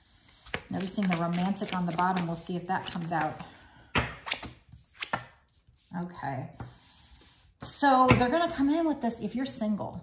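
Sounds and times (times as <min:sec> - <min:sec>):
cards sliding: 0:00.3 - 0:03.4, 0:04.0 - 0:05.9.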